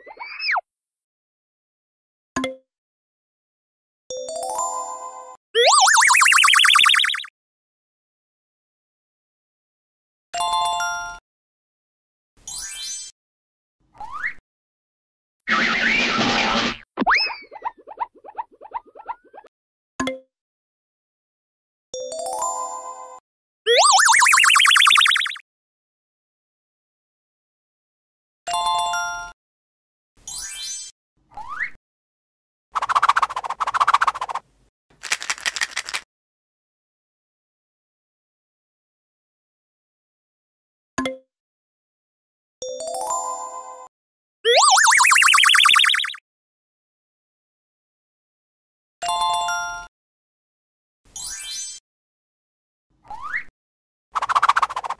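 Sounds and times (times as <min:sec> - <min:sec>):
cartoon wobbling whistle tone: 0:05.6 - 0:07.3, 0:23.7 - 0:25.4, 0:44.5 - 0:46.2
fast short chirps: 0:05.6 - 0:07.3, 0:23.7 - 0:25.4, 0:35.0 - 0:36.0, 0:44.5 - 0:46.2.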